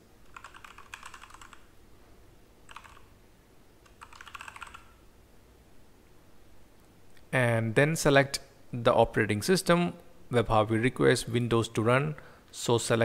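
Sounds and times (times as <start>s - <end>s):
typing on computer keyboard: 0.2s - 1.7s, 2.7s - 3.1s, 3.8s - 5.0s.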